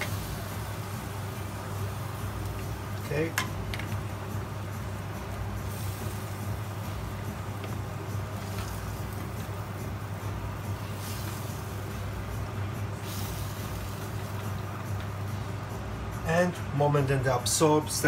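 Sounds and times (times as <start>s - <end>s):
gas burner hiss: 0.0s - 17.9s.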